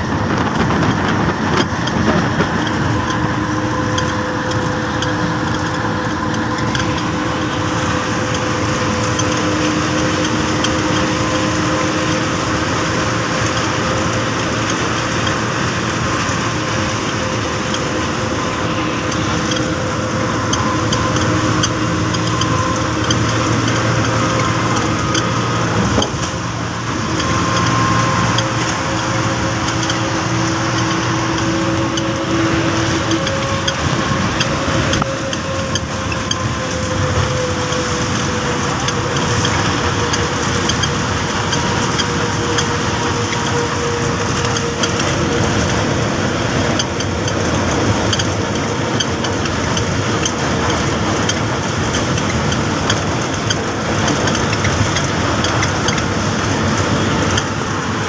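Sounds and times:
road and wind noise: 0.0 - 58.0
vehicle engine hum: 0.0 - 58.0.

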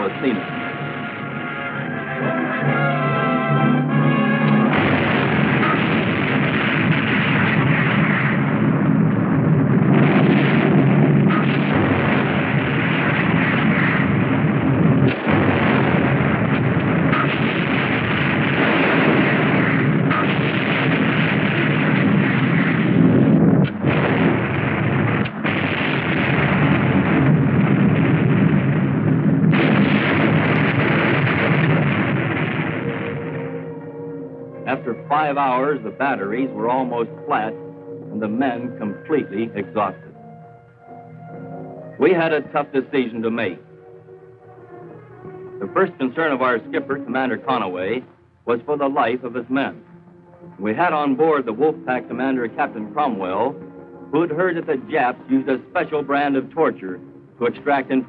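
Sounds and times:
heavy rumble: 0.0 - 36.0
depth charge explosions: 0.0 - 47.5.

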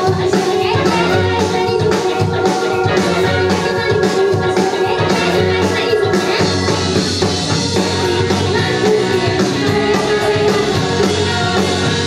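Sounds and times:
drums: 0.0 - 12.0
electric bass: 0.0 - 12.0
electric guitar: 0.0 - 12.0
keyboard playing: 0.0 - 12.0
trumpet melody: 0.6 - 10.3.

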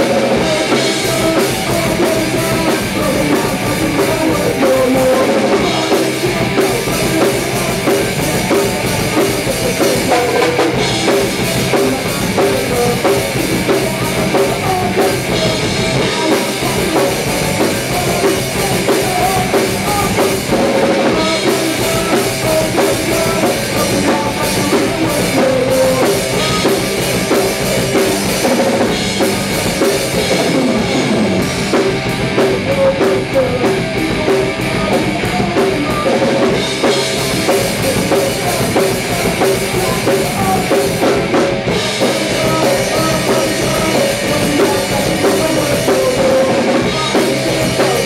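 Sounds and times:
drum kit: 0.0 - 48.0
electric guitars: 0.0 - 48.0.

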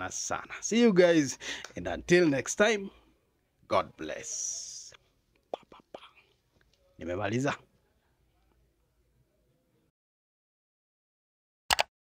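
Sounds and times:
man whispering: 0.0 - 1.4, 3.7 - 7.6
mouth clicks: 5.4 - 6.3.

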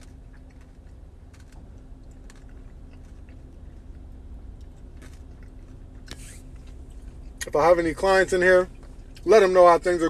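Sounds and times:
person chewing crunchy food: 0.0 - 7.5
steady low hum: 0.0 - 10.0.

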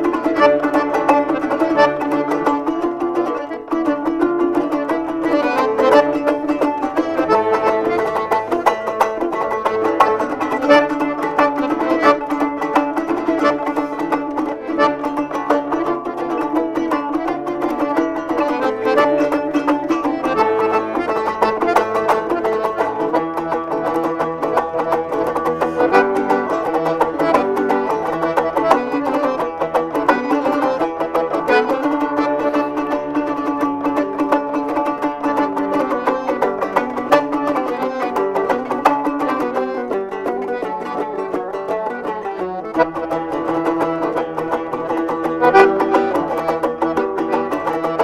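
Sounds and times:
accordion held chords: 0.0 - 48.0
lute strummed and plucked: 0.0 - 48.0.

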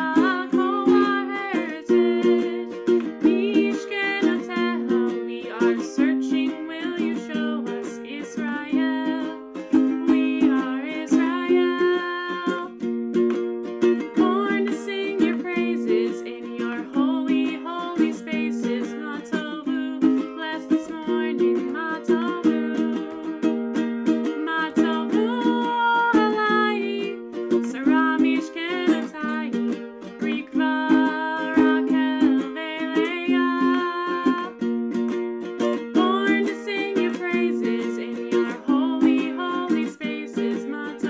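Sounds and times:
woman singing: 0.0 - 12.9, 14.0 - 34.8, 35.7 - 41.0
ukulele strumming: 0.0 - 41.0.

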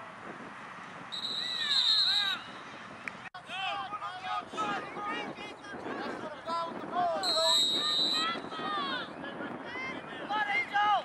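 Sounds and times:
referee's whistle long blast: 1.1 - 2.5, 7.2 - 8.4.

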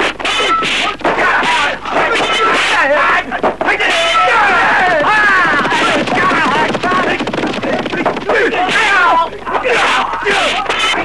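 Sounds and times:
men shouting and crying out: 0.1 - 11.0.

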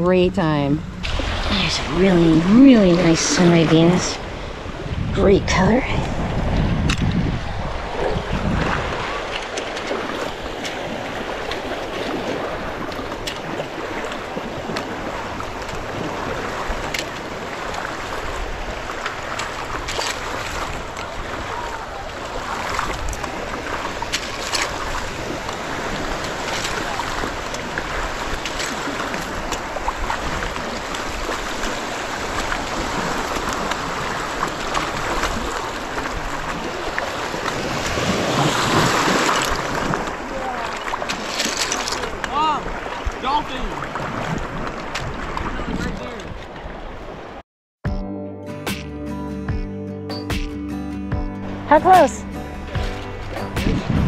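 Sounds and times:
surf lapping: 0.0 - 47.4, 51.4 - 54.0
small splashes: 8.1 - 46.4.

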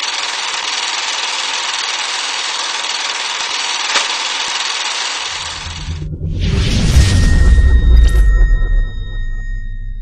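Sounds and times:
high ringing tones: 5.3 - 10.0
deep bass boom: 5.4 - 10.0.

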